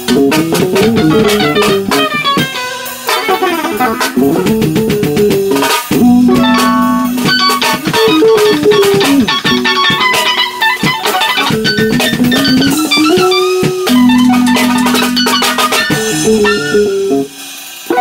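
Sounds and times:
bass guitar: 0.0 - 18.0
drum kit: 0.0 - 18.0
electric guitar lead: 0.0 - 18.0.

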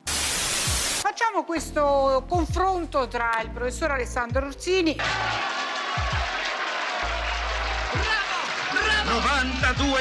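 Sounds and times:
crowd applauding: 5.0 - 10.0
background music with bass: 7.1 - 10.0.

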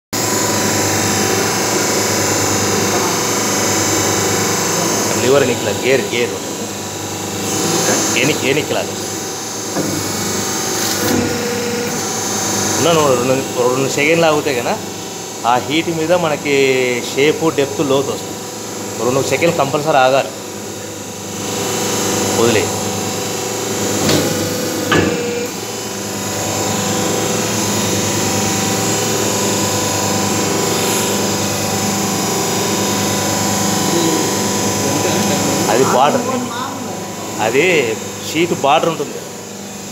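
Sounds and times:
hydraulic pump motor hum: 0.2 - 39.9.

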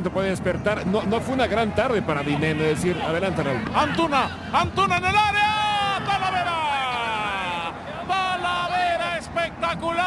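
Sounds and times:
man commentating excitedly: 0.0 - 10.0.

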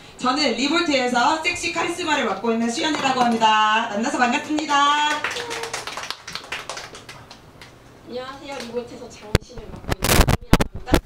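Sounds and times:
small crowd clapping: 4.4 - 7.8, 8.4 - 8.8.

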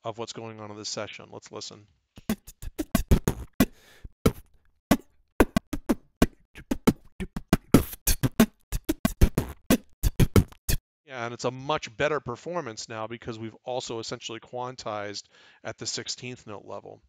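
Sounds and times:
beatbox vocal percussion hits: 2.2 - 10.8.

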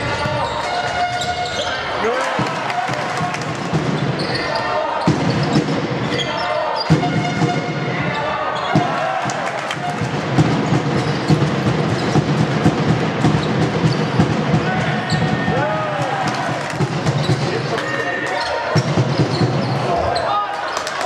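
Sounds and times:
voices in hall: 0.0 - 21.0.

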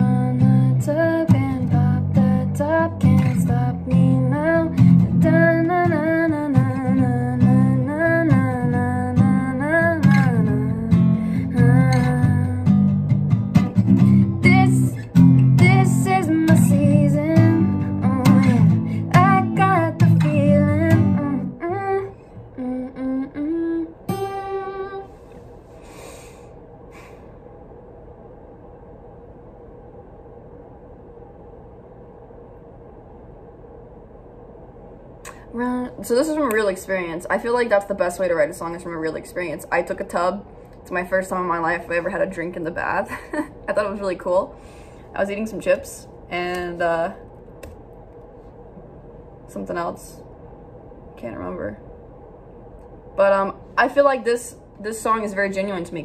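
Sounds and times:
woman singing: 0.0 - 13.0, 14.0 - 25.2, 35.4 - 40.2
acoustic guitar strumming chords: 0.0 - 21.6, 24.1 - 25.1.

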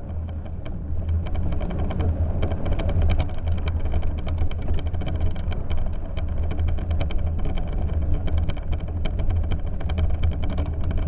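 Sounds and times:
bicycle tyres rolling over snow: 0.0 - 11.0
crackles and ticks of snow: 0.0 - 11.0.

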